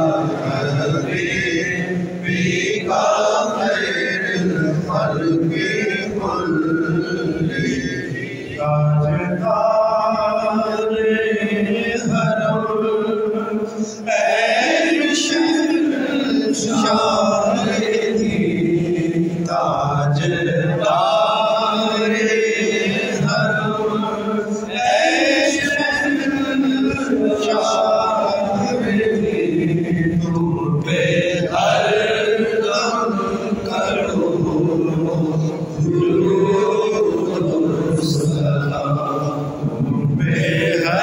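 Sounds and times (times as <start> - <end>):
man chanting: 0.0 - 41.0.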